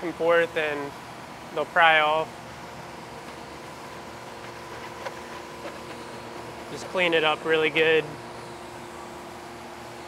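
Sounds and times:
faint constant tone: 0:00.0 - 0:10.0
low background hum: 0:00.0 - 0:10.0.

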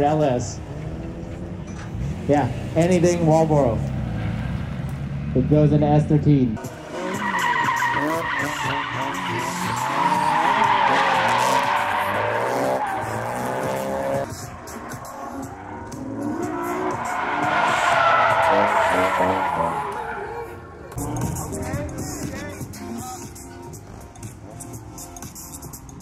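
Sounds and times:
car engine revving: 0:00.4 - 0:25.6
tire squeal: 0:06.6 - 0:20.8.

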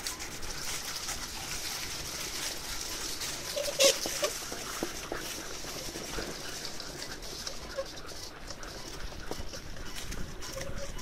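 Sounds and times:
paws running through leaves: 0:00.0 - 0:11.0
rig rolling: 0:00.0 - 0:11.0.

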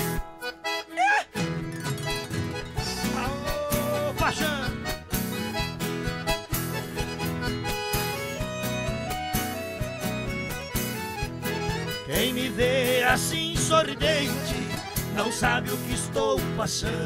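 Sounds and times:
accordion playing: 0:00.0 - 0:16.2
strummed acoustic guitar: 0:00.0 - 0:17.0.

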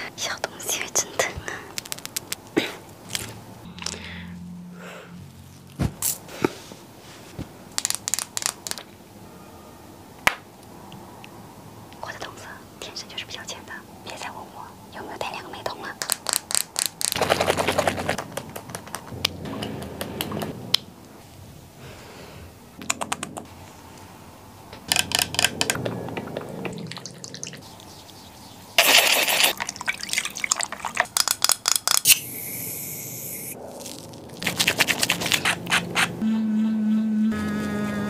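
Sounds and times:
squishy rubbing on skin: 0:28.1 - 0:31.0, 0:33.8 - 0:36.1.

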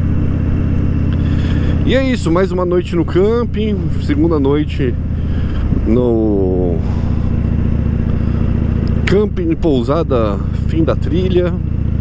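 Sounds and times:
motorcycle engine running: 0:00.0 - 0:12.0
person speaking: 0:01.5 - 0:07.3.

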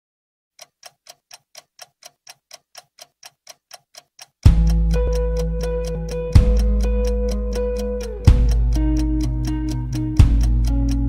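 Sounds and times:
clock ticking: 0:00.6 - 0:11.0.

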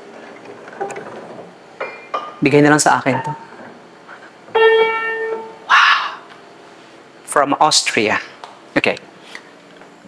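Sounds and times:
piano note: 0:04.5 - 0:05.7.

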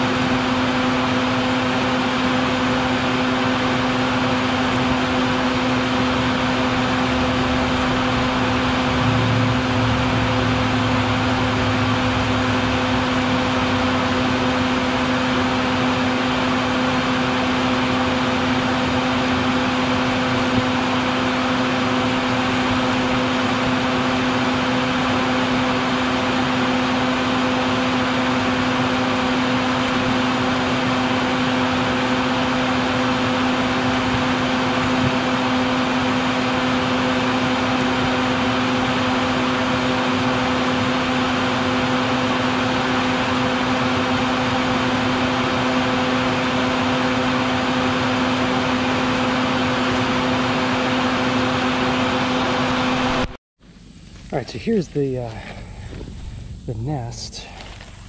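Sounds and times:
vacuum humming with air rush: 0:00.0 - 0:58.0.

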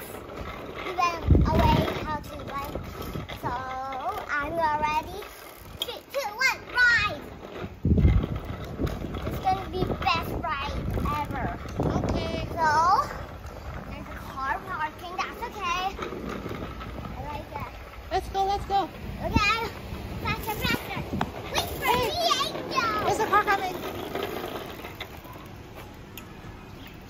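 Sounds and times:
low rumbles: 0:00.0 - 0:05.8, 0:06.6 - 0:27.0
child's high-pitched chatter: 0:00.9 - 0:07.3, 0:09.4 - 0:13.3, 0:19.2 - 0:23.9.

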